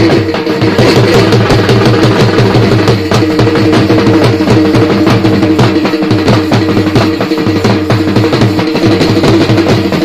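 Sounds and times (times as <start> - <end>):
devotional music with fast drum beat: 0.0 - 10.0.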